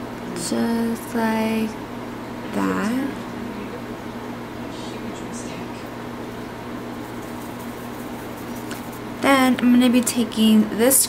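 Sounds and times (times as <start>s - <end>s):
low even hum: 0.0s - 11.0s.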